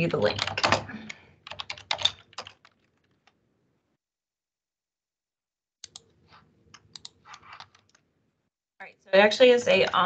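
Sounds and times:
typing on keyboard: 0:00.2 - 0:03.4, 0:06.8 - 0:08.0.

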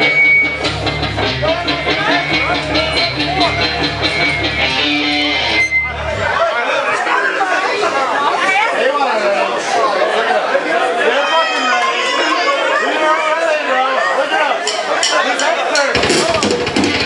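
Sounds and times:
amplified band with heavy bass: 0:00.0 - 0:06.6, 0:15.9 - 0:17.0
crowd chatting: 0:00.0 - 0:17.0.

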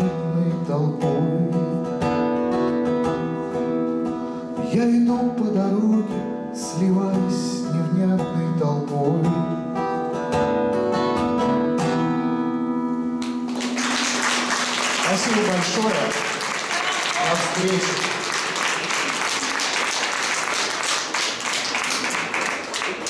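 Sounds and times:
man singing: 0:00.0 - 0:02.0, 0:04.6 - 0:09.7
strummed acoustic guitar: 0:00.0 - 0:16.3
applause: 0:13.2 - 0:23.0.

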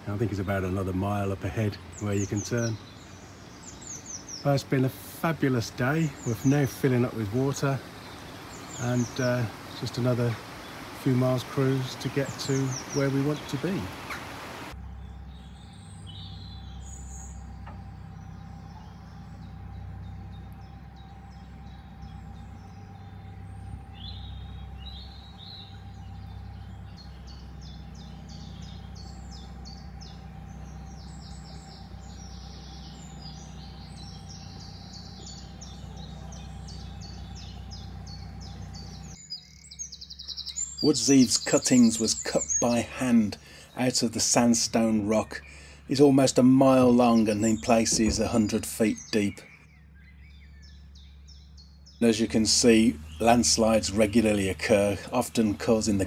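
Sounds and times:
boat engine running: 0:00.0 - 0:56.0
small birds chirping: 0:00.0 - 0:56.0.

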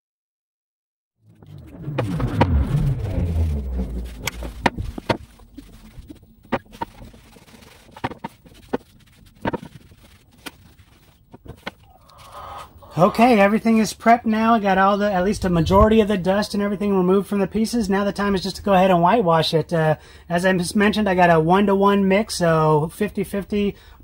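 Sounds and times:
low rumble: 0:01.2 - 0:07.9, 0:14.6 - 0:17.1.

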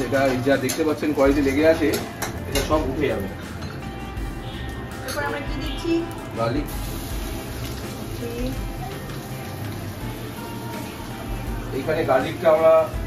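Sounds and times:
kitchen utensils clinking: 0:00.0 - 0:04.0, 0:04.7 - 0:05.9
background music: 0:00.0 - 0:13.0.

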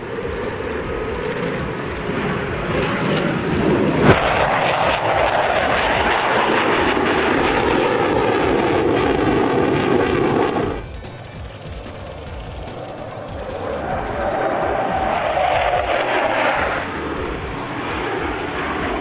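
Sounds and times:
jet engines roaring: 0:00.0 - 0:19.0
sharp crack: 0:00.0 - 0:19.0.

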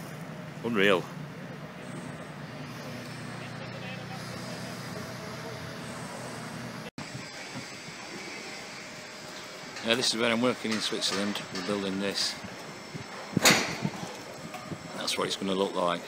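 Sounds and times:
low drone: 0:00.0 - 0:10.4
distant traffic: 0:00.0 - 0:16.0
site machinery: 0:00.0 - 0:16.0.

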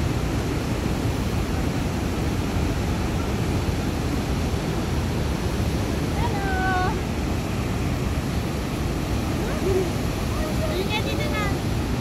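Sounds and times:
rushing white water: 0:00.0 - 0:12.0.

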